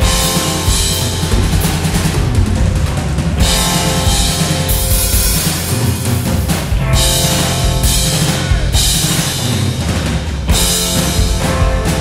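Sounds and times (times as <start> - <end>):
cymbals crashing: 0.0 - 9.8
live rock band playing: 0.0 - 12.0.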